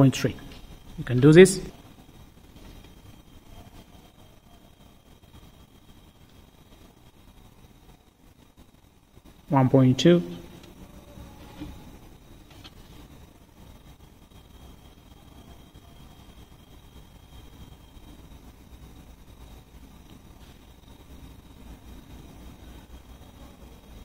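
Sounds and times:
faint hiss: 0.0 - 24.0
low hum: 0.0 - 24.0.

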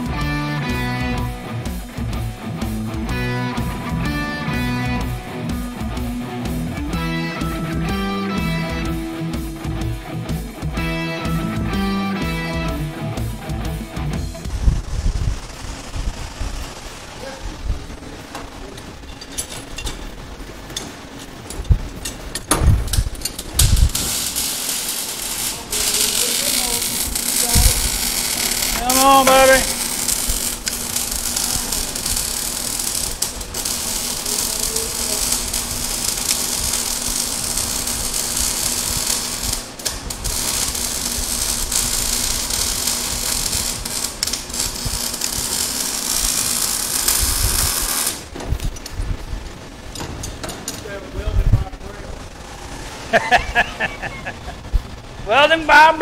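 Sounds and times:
welder arc crackling: 0.0 - 56.0.

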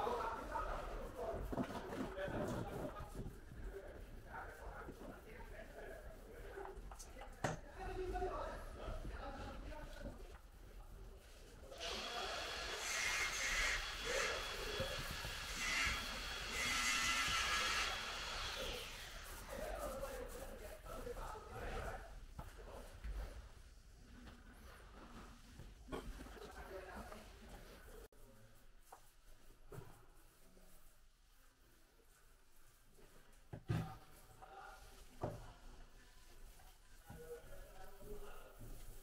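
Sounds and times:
paint roller hissing stroke: 11.2 - 21.2.

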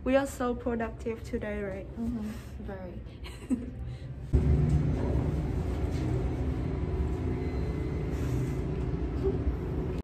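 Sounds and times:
faint hum: 1.8 - 10.0
elevator rumble: 4.3 - 10.0.

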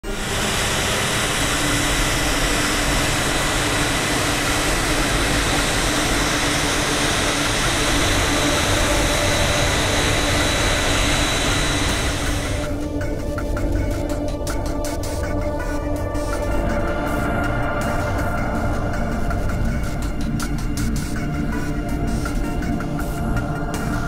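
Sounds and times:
jet engines running with whine: 0.0 - 24.0.

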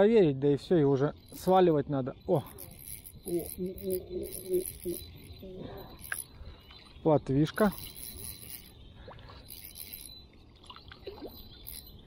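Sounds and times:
high-pitched chirring: 0.7 - 12.0.

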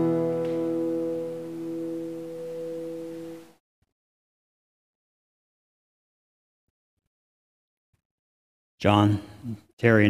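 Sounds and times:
acoustic guitar chord ringing: 0.0 - 3.5.

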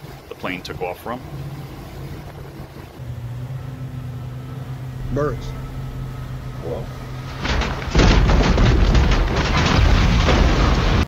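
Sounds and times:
boat engine humming: 0.0 - 9.6
water noise: 0.0 - 11.0.

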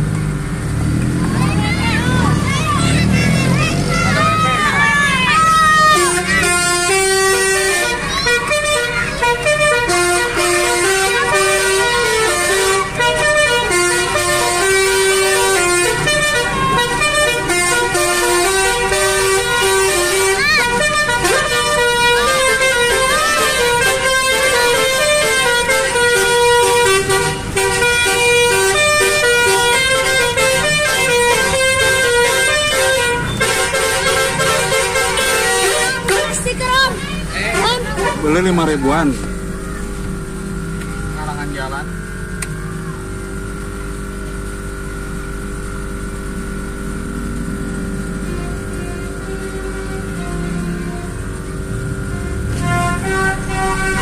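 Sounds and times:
multi-tone air horn melody: 2.2 - 41.2, 43.4 - 54.0.

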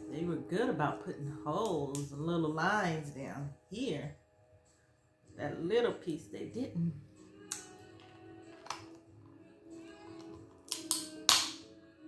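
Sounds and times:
soft background music: 0.0 - 12.0
crab shell cracking: 10.2 - 11.6.

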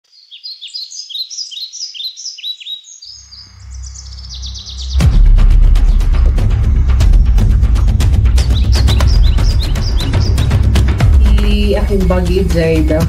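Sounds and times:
birds chirping: 0.0 - 13.0
low drone: 3.4 - 13.0
music with steady beat: 5.0 - 13.0.

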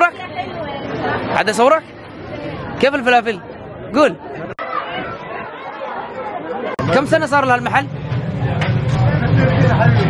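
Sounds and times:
chatter of several voices: 0.0 - 10.0.

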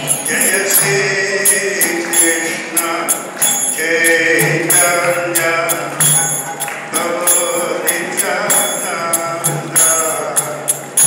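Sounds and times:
man chanting through a microphone: 0.0 - 11.0
small hand cymbals struck: 0.0 - 11.0.

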